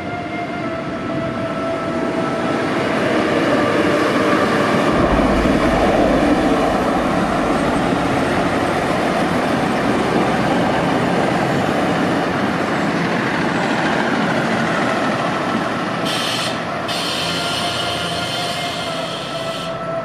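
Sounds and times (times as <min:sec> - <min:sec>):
diesel train rumbling on rails: 0:00.0 - 0:20.0.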